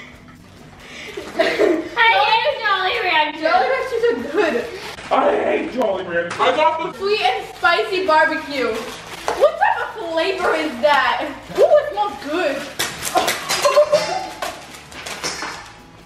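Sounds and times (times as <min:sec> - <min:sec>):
girls talking and exclaiming: 0:01.4 - 0:05.0, 0:06.4 - 0:14.5
candies clattering onto countertop: 0:12.5 - 0:15.8.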